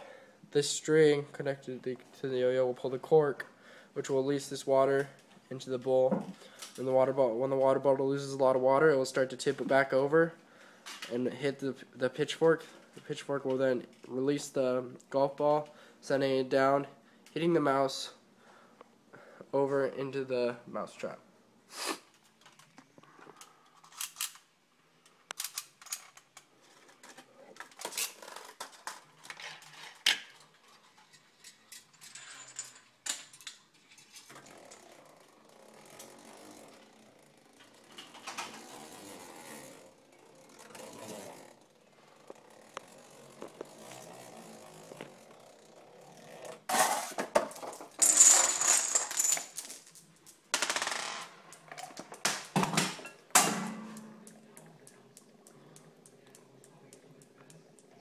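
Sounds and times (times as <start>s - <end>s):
marbles rolling: 42.3s - 52.8s
marbles clicking and rattling: 47.8s - 51.7s.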